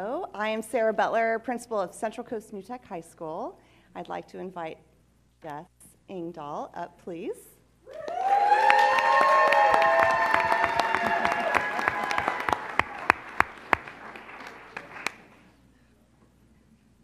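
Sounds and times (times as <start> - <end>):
people whooping and cheering: 7.9 - 13.5
crowd applauding: 7.9 - 15.4.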